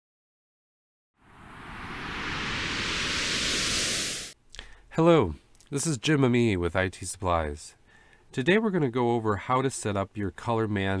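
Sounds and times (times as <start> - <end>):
whoosh: 1.2 - 4.4.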